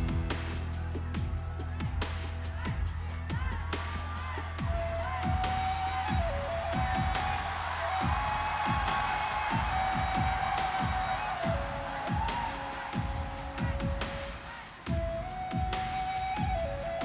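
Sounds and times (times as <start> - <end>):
crowd cheering: 0.0 - 17.0.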